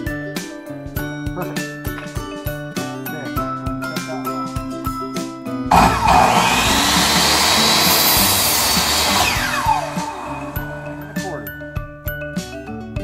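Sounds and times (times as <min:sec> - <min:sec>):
background music: 0:00.0 - 0:13.0
miter saw cutting wood: 0:05.7 - 0:11.4.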